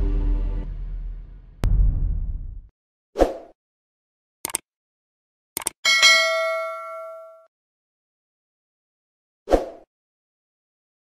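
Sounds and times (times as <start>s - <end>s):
bell ding: 5.9s - 7.5s.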